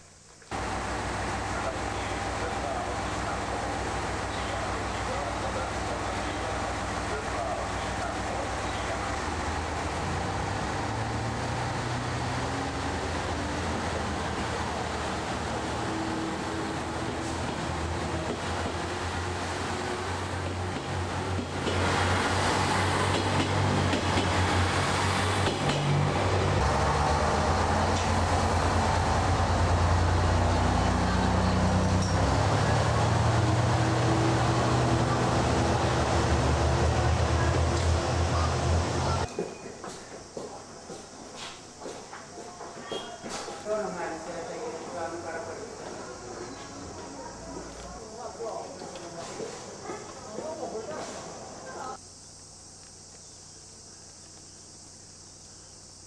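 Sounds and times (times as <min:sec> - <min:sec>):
diesel railcar engines accelerating: 0:00.0 - 0:52.7
train wheel noise: 0:00.5 - 0:52.0.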